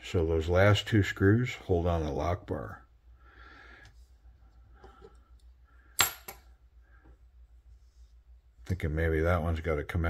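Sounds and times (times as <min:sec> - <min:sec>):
faint handling sounds: 0:03.7 - 0:05.8, 0:06.5 - 0:09.2.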